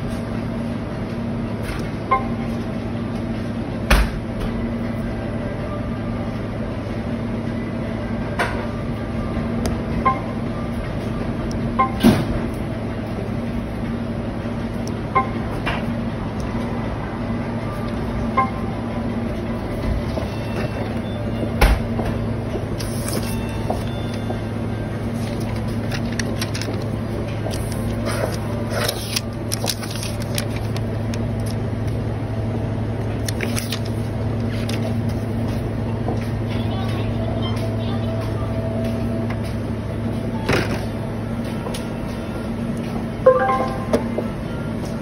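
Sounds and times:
low machine hum: 0.0s - 45.0s
noisy background: 0.0s - 45.0s
paper rustling: 22.8s - 23.4s, 25.2s - 31.6s, 33.2s - 35.2s.

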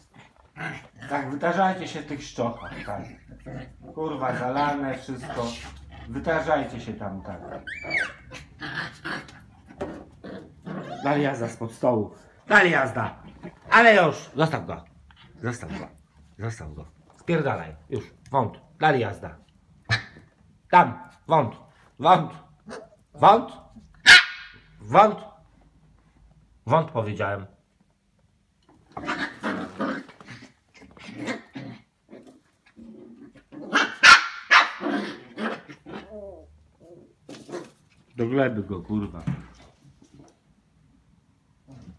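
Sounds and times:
dogs growling: 0.0s - 11.6s, 12.9s - 13.8s, 28.9s - 34.1s, 34.8s - 38.0s.

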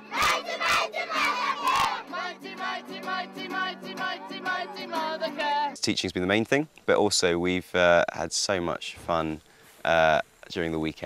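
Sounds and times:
children shouting in chanted bursts: 0.0s - 2.4s
children singing: 0.0s - 5.7s
strummed acoustic guitar: 0.0s - 5.8s.

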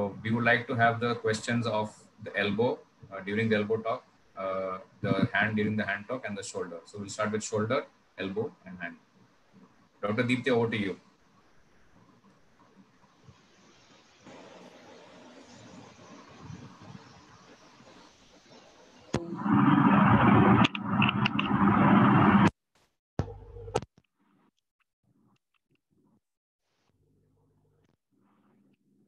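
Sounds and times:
faint microphone hiss: 0.0s - 19.2s
loud microphone noise rush: 19.2s - 22.5s.

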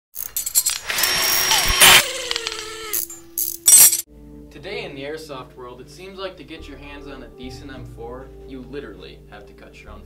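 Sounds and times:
whirring hissing tool: 0.6s - 3.2s.

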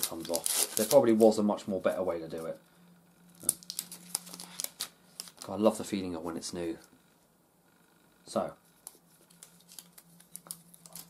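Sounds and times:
plastic film crackling: 0.0s - 2.5s, 3.3s - 5.8s, 8.8s - 11.0s.

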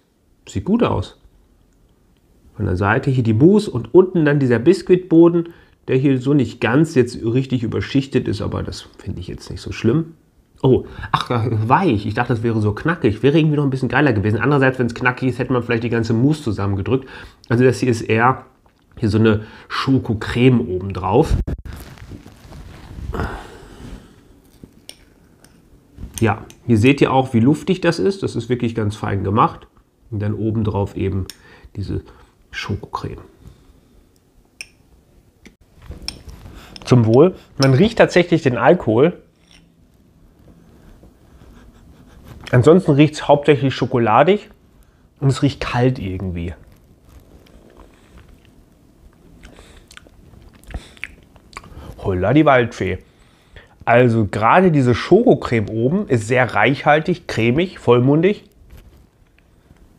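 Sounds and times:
soft handling sound: 21.4s - 23.1s, 23.8s - 26.7s, 35.6s - 38.2s, 45.5s - 49.4s, 58.5s - 59.9s
mouth smacking and clicks: 49.2s - 51.8s.

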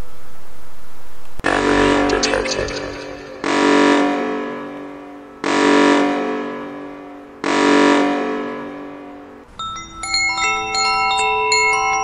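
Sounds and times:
synthesized alert tone: 1.4s - 4.2s.

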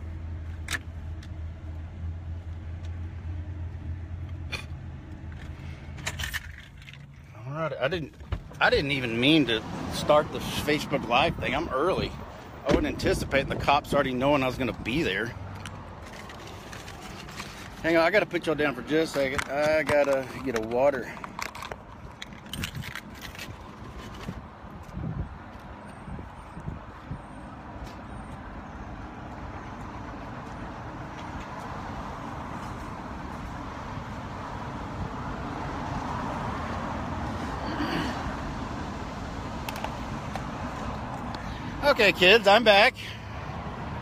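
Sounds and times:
highway traffic noise: 0.0s - 44.0s.

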